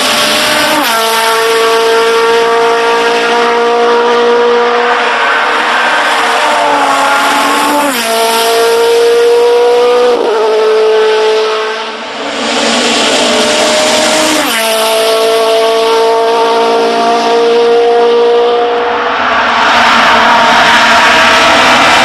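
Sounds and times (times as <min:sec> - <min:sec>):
racing engine at high revs: 0:00.0 - 0:22.0.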